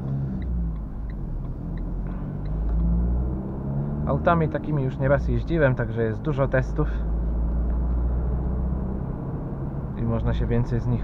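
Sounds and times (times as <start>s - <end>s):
diesel engine drone in car: 0.0s - 11.0s
road and tyre noise: 0.0s - 11.0s.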